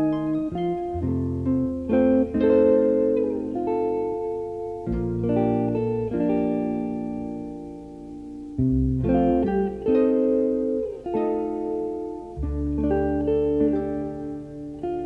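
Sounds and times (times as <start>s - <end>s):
bass notes: 0.0s - 15.0s
guitar picking a melody: 0.0s - 15.0s.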